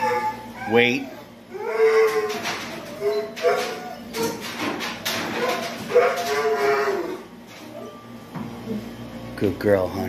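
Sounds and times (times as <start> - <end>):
dog howling: 0.0 - 8.2.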